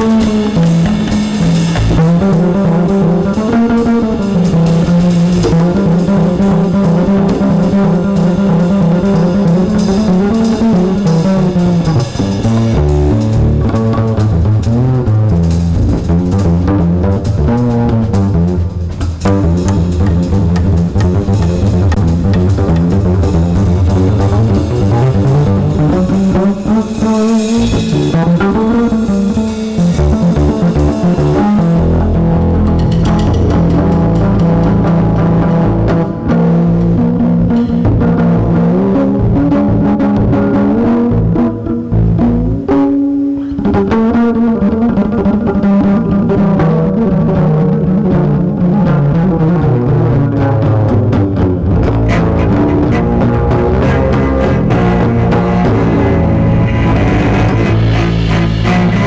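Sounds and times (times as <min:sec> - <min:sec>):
drum kit: 0:00.0 - 0:59.0
plucked double bass: 0:00.0 - 0:59.0.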